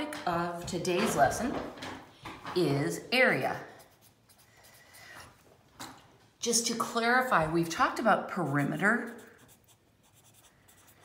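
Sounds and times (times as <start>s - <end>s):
marker writing on paper: 8.4s - 11.0s.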